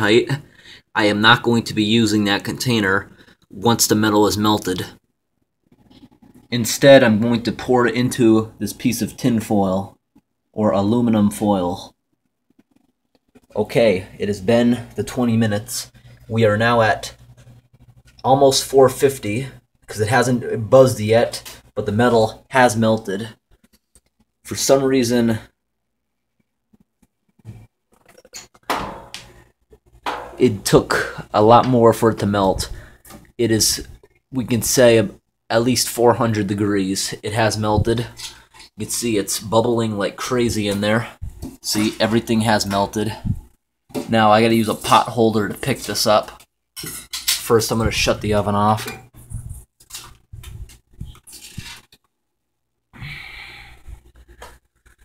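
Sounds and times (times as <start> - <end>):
oven door clunk: 28.7 - 29.3.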